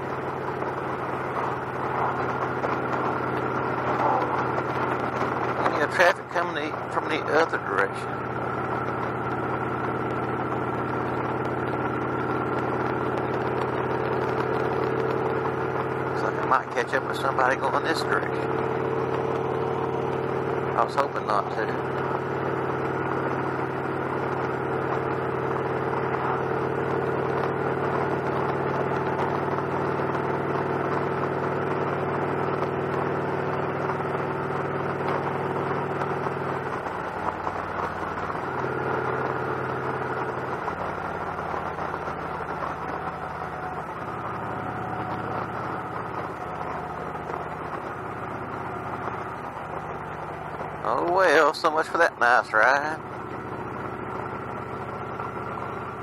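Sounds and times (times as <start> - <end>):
motorcycle engine cruising: 0.0 - 56.0
road and wind noise: 0.0 - 56.0.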